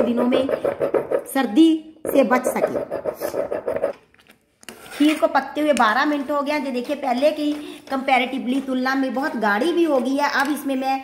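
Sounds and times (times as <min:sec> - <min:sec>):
stone pestle scraping in mortar: 0:00.0 - 0:01.5, 0:02.1 - 0:05.4.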